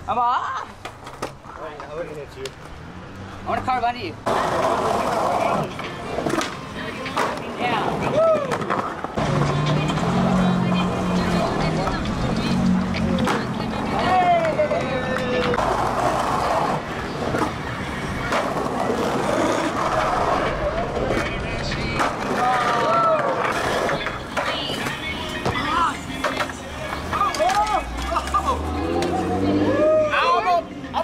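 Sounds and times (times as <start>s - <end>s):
skateboard wheels rolling on concrete: 0.0s - 31.0s
skateboard clacking on ground: 0.6s - 2.8s, 4.2s - 10.1s, 10.8s - 29.2s
onlookers calling out: 7.8s - 31.0s.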